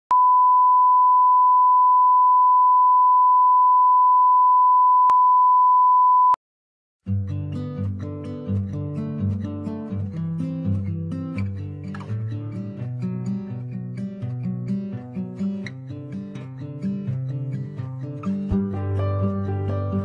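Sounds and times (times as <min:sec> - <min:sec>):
test tone beep: 0:00.1 - 0:06.4
music: 0:07.0 - 0:20.0.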